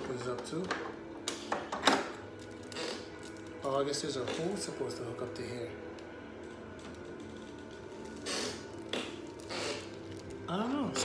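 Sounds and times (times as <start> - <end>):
plastic crinkling: 2.1 - 4.7, 5.3 - 11.0.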